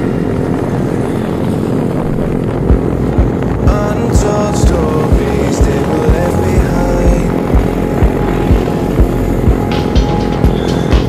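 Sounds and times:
motorcycle engines droning: 0:00.0 - 0:11.0
deep music beat thumps: 0:00.6 - 0:11.0.

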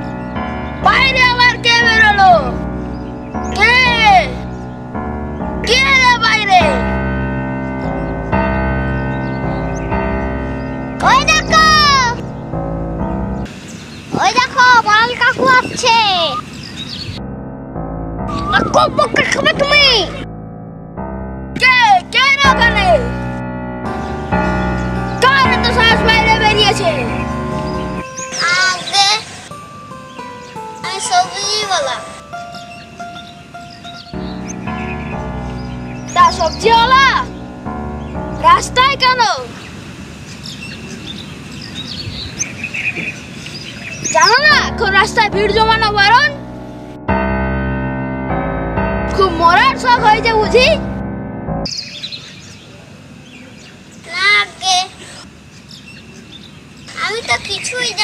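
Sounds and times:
background music held chord: 0:00.0 - 0:13.5, 0:17.2 - 0:39.7, 0:44.1 - 0:51.8
boy calling: 0:00.8 - 0:02.6, 0:03.4 - 0:04.5, 0:05.6 - 0:07.0, 0:11.0 - 0:12.2, 0:14.2 - 0:16.5, 0:18.3 - 0:20.2, 0:21.6 - 0:23.2, 0:25.1 - 0:29.6, 0:30.8 - 0:33.0, 0:36.1 - 0:37.4, 0:38.4 - 0:39.6, 0:44.0 - 0:46.4, 0:49.1 - 0:50.8, 0:56.9 - 0:58.0
child singing: 0:00.8 - 0:02.6.

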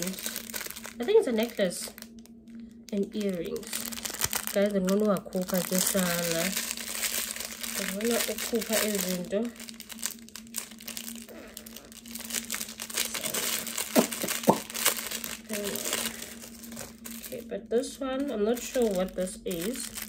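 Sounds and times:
plastic bag crinkling: 0:00.0 - 0:20.0.

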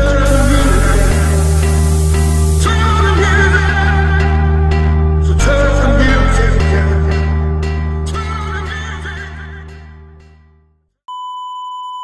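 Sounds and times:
steady test tone: 0:00.0 - 0:03.2
music: 0:00.0 - 0:11.0.

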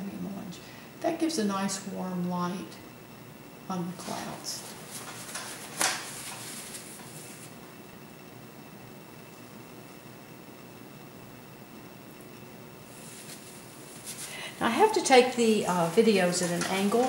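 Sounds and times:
faint room tone hiss: 0:00.0 - 0:17.0
paintbrush brushing on canvas: 0:12.9 - 0:14.4.

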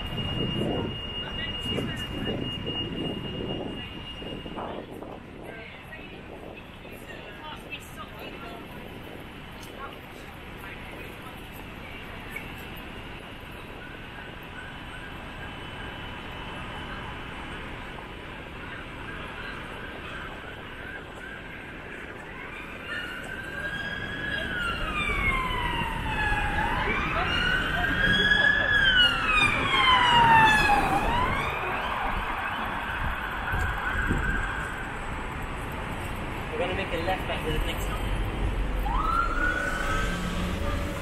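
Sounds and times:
emergency vehicle siren wailing: 0:00.0 - 0:10.0, 0:10.9 - 0:41.0
city street traffic: 0:00.0 - 0:41.0.

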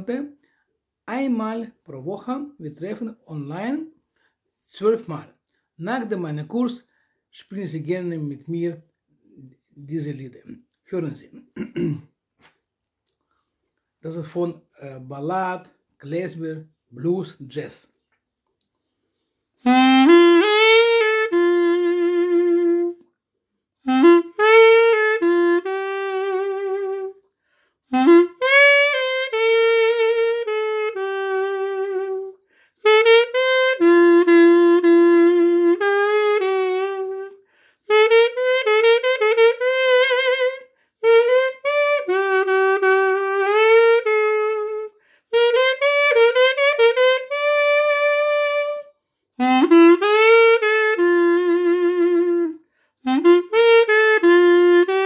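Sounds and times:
reed pipe melody: 0:19.6 - 0:23.0, 0:23.8 - 0:27.2, 0:27.9 - 0:55.0.

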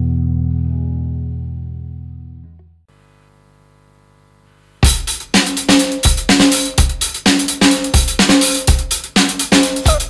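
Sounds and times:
driving drum-kit beat: 0:04.8 - 0:10.0
instrumental rock music: 0:04.8 - 0:10.0.

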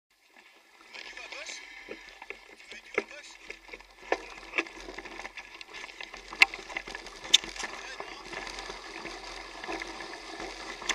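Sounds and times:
mountain bike rattling on dirt track: 0:02.7 - 0:10.9.

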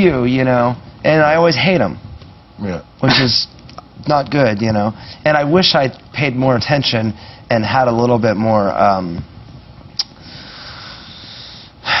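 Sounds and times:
mouth click: 0:10.0 - 0:10.2
man breathing into microphone: 0:10.2 - 0:12.0.

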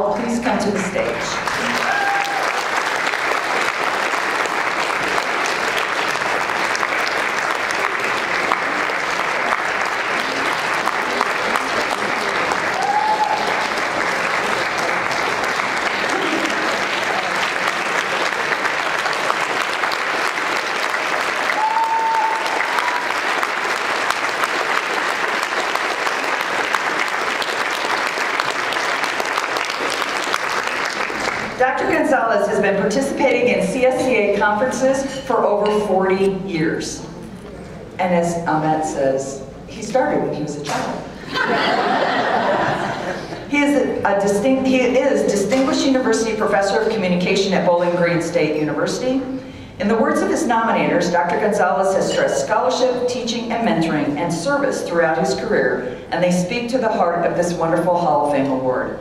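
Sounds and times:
audience applauding: 0:01.4 - 0:31.6.

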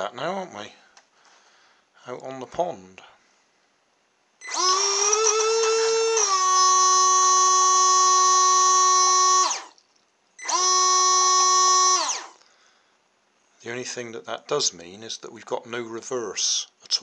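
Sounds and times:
small water pump whining: 0:04.4 - 0:12.7.

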